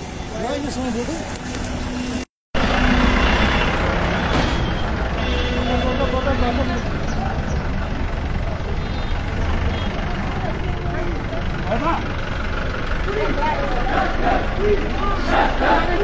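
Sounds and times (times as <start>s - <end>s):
jeep engine low rumble: 6.2s - 16.0s
crowd shouting: 13.2s - 16.0s.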